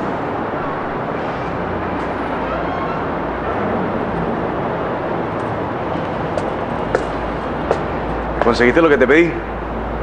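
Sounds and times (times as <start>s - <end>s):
low hum: 0.0s - 8.4s
steady background noise: 0.0s - 10.0s.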